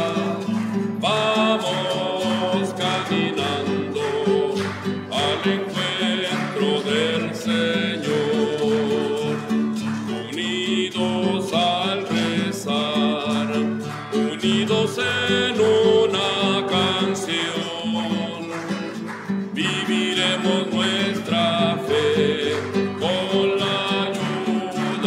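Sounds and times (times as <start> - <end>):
acoustic guitar: 0.0 - 25.0
person singing a hymn: 0.0 - 25.0.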